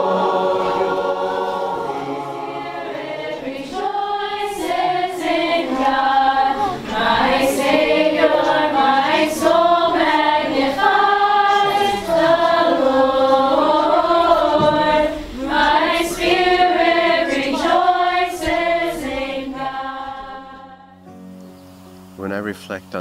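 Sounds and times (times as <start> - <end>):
group singing in unison: 0.0 - 21.0.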